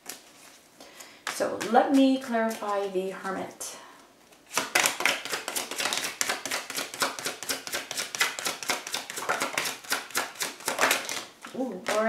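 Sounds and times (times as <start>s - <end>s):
cards being shuffled: 4.3s - 12.0s.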